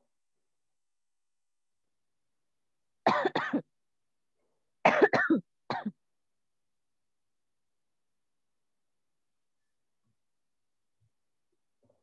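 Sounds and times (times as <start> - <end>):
person coughing: 3.1 - 3.6, 4.9 - 6.0.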